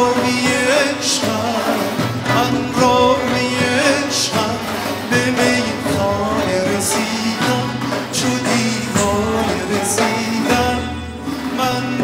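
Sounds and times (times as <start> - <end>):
bowed fiddle: 0.0 - 12.0
man singing ornamented melody: 0.0 - 12.0
plucked lutes: 0.0 - 12.0.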